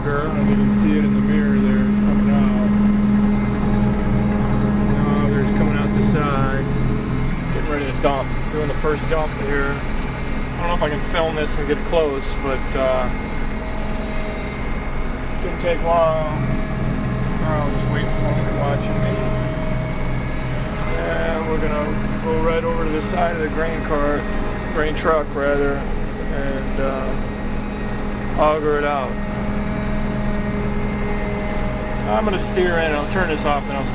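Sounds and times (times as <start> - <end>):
combine harvester rumbling: 0.0 - 33.9
faint steady whine: 0.0 - 33.9.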